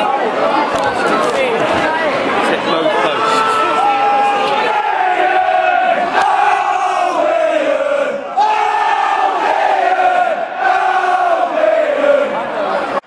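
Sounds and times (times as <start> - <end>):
crowd singing a chant: 4.6 - 13.0.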